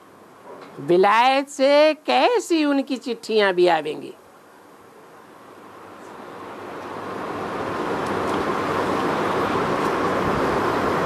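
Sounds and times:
steady rushing noise: 0:05.3 - 0:11.0.

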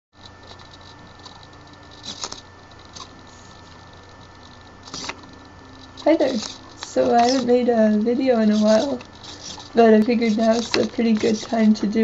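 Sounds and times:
low electrical hum: 0:00.2 - 0:12.0.

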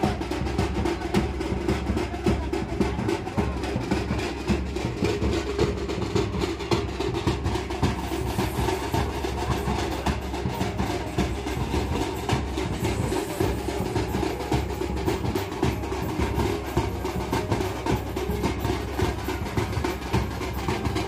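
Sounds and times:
drums in fast rhythm: 0:00.0 - 0:21.0.

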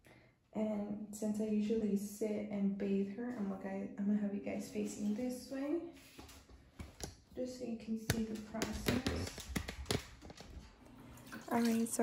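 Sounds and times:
puppy claws clicking on bathtub: 0:08.0 - 0:10.8.

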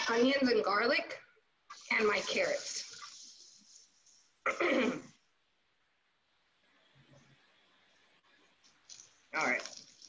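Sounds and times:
woman clearing her throat: 0:04.5 - 0:05.1.

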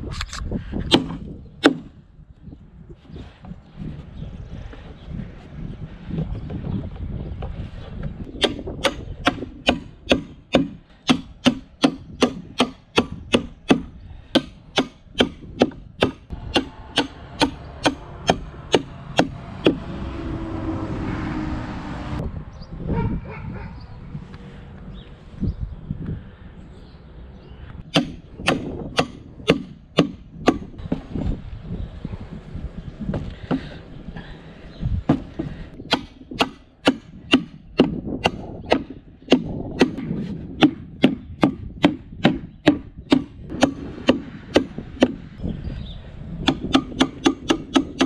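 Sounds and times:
hammer striking steel spikes: 0:08.4 - 0:19.8, 0:46.5 - 0:48.0.

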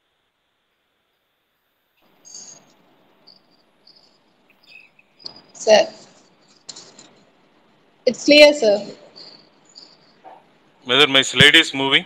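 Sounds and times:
faint background hiss: 0:00.0 - 0:12.0
faint high-pitched chirps: 0:02.0 - 0:07.4, 0:08.1 - 0:10.7.

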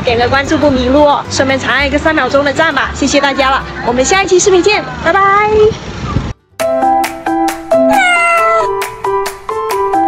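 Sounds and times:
cat-like meow sound effect: 0:07.8 - 0:08.8.

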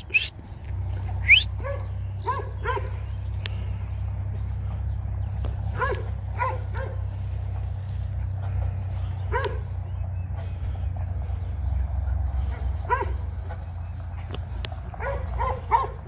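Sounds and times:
steady low rumble: 0:00.0 - 0:16.0
dog barking: 0:01.3 - 0:03.0, 0:05.7 - 0:07.1, 0:09.3 - 0:09.8, 0:12.5 - 0:13.3, 0:15.0 - 0:16.0.

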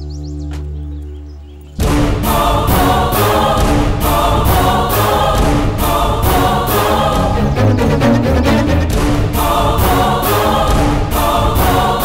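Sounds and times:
choir and orchestra passage: 0:01.2 - 0:12.0
regular percussive beat: 0:01.8 - 0:12.0.

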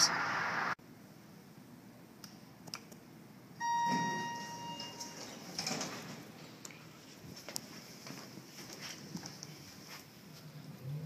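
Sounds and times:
elevator call button click: 0:03.6 - 0:05.3
elevator arrival chime: 0:03.6 - 0:05.8
elevator doors sliding open: 0:03.6 - 0:06.6.

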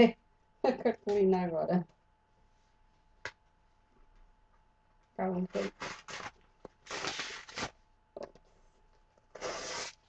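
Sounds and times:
paper being pulled apart: 0:05.6 - 0:07.8, 0:09.4 - 0:10.0.

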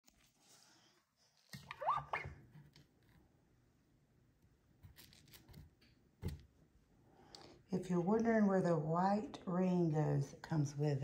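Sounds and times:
plastic scraping with squeak: 0:01.5 - 0:02.8.

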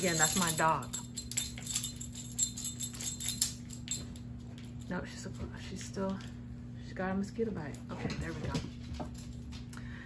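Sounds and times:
dog collar tags jingling: 0:00.0 - 0:05.0.

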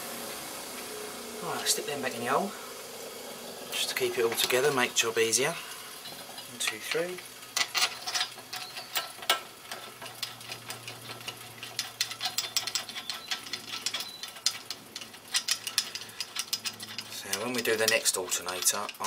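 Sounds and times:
metallic clicks of bolts: 0:06.6 - 0:19.0.

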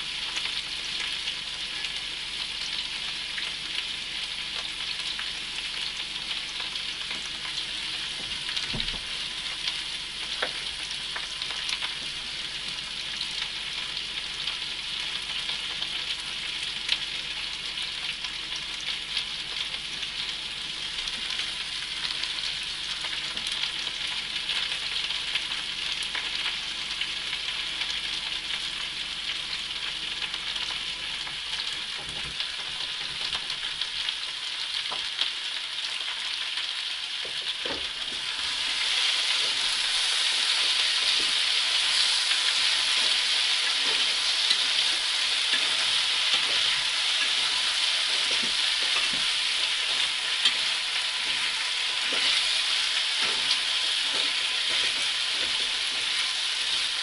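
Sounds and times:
potatoes sizzling in a pan: 0:00.0 - 0:57.0.

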